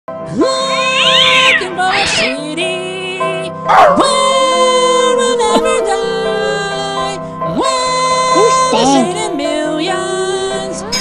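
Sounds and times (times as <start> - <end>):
sustained backing chord: 1.6 - 11.0.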